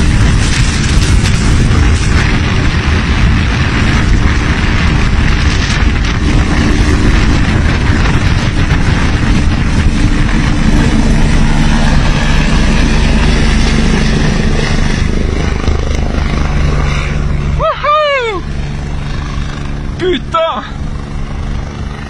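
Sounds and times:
helicopter rotor and turbine: 0:00.0 - 0:22.0
person crying out: 0:17.6 - 0:18.5.

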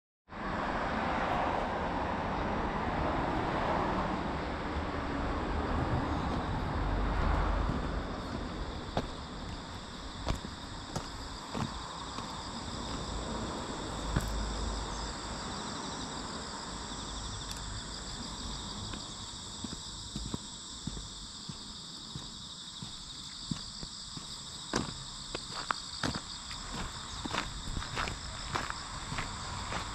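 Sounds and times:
crickets chirring: 0:00.4 - 0:29.9
footsteps on pavement: 0:05.7 - 0:15.1, 0:17.1 - 0:29.9.

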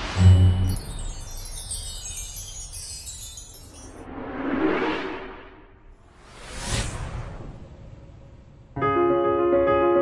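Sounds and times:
shimmering chime-like tinkles: 0:00.0 - 0:04.2.

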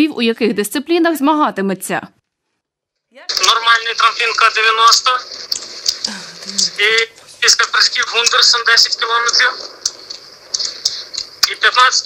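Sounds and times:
man speaking through phone speaker: 0:03.3 - 0:05.4, 0:06.4 - 0:09.8, 0:11.4 - 0:12.0.

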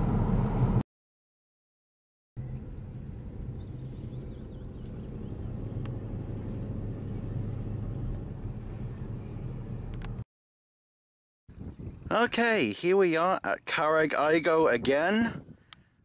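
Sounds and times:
car engine and road noise: 0:00.0 - 0:00.8, 0:02.4 - 0:10.3.

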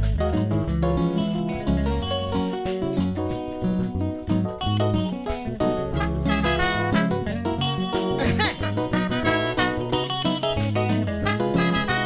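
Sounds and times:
drums: 0:00.0 - 0:05.6
bass: 0:00.0 - 0:12.0
guitar: 0:00.0 - 0:12.0
trombone: 0:05.7 - 0:12.0
trumpet: 0:05.9 - 0:10.4, 0:11.0 - 0:12.0.

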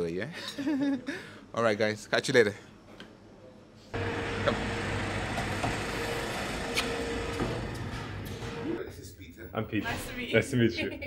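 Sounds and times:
street traffic noise: 0:04.0 - 0:08.8.

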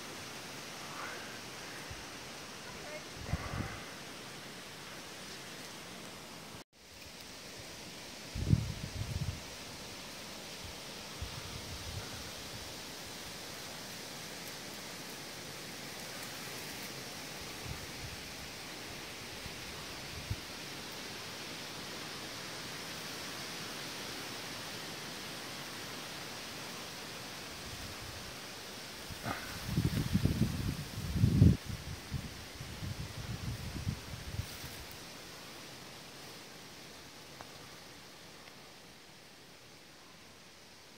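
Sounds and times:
breeze rustling leaves: 0:00.0 - 0:40.9
wind thumps on microphone: 0:29.2 - 0:31.8.

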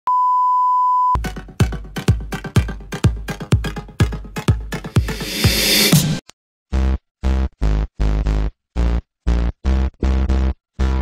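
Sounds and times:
electronic dance music: 0:01.2 - 0:06.2.

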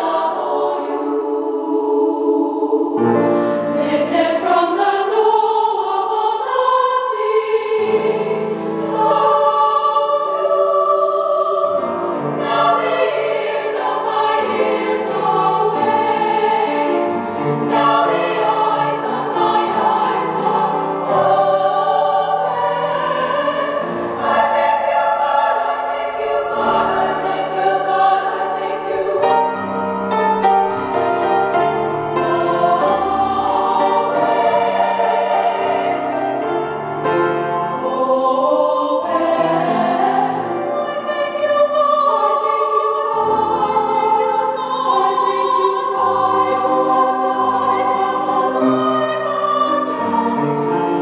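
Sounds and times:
women's choir singing: 0:00.0 - 0:30.1, 0:31.7 - 0:51.0.

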